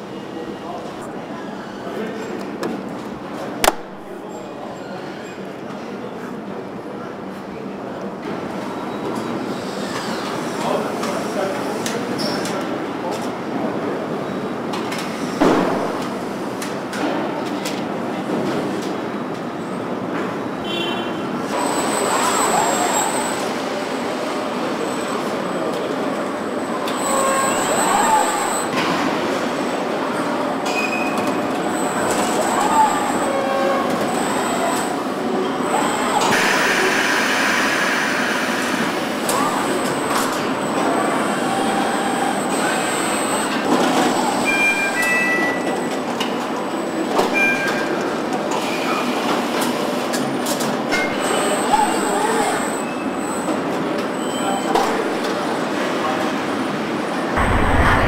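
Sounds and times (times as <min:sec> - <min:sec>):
faint voices: 0:00.0 - 0:19.2
machinery din: 0:15.4 - 0:16.3, 0:57.4 - 0:58.0
machinery knocks: 0:57.4 - 0:58.0.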